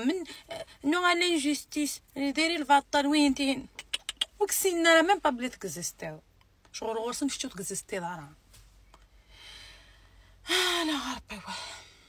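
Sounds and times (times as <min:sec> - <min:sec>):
woman breathing in: 0:09.2 - 0:10.6.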